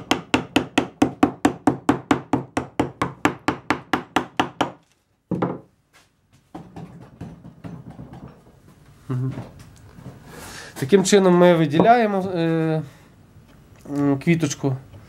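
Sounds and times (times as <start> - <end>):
knock: 5.3 - 5.7, 6.5 - 8.4.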